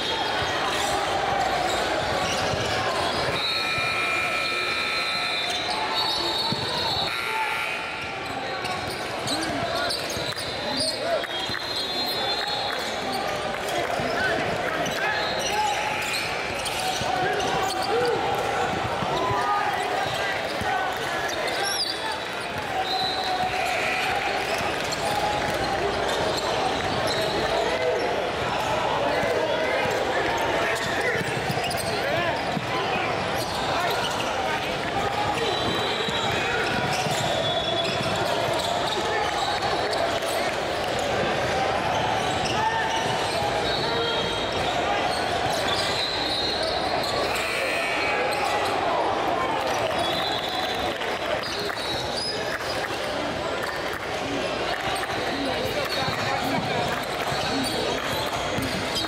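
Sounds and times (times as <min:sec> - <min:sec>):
crowd chatter in large hall: 0:00.0 - 0:59.0
sneaker squeaks: 0:00.1 - 0:28.4, 0:29.0 - 0:48.9, 0:49.6 - 0:59.0.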